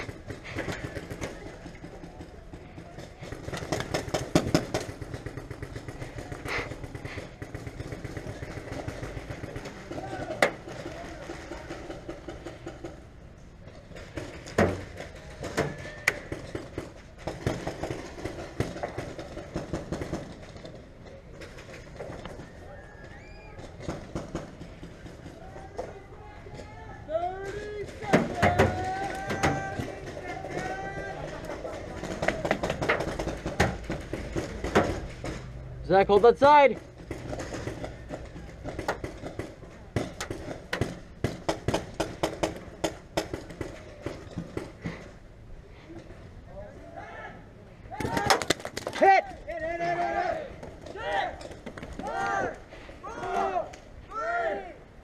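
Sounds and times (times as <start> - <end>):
distant shouting: 9.5 - 12.2, 22.3 - 23.9, 25.2 - 32.5, 46.6 - 55.0.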